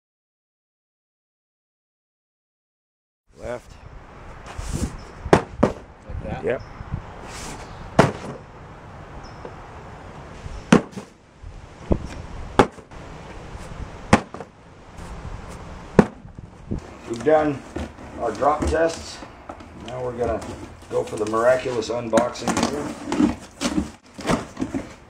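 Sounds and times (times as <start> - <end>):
cardboard box thudding on concrete: 4.8 - 5.8, 8.0 - 8.4, 10.7 - 11.1, 12.6 - 12.8, 14.1 - 14.5, 16.0 - 16.2, 17.2 - 19.2, 22.2 - 25.0.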